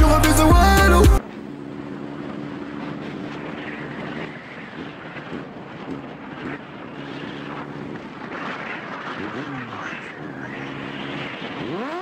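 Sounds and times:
motorcycle engine hum: 0.0s - 12.0s
wind rushing on microphone: 1.8s - 12.0s.

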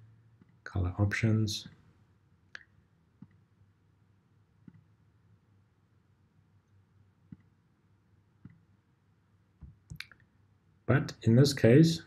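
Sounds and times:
computer mouse clicks: 4.6s - 4.9s, 7.3s - 7.5s.

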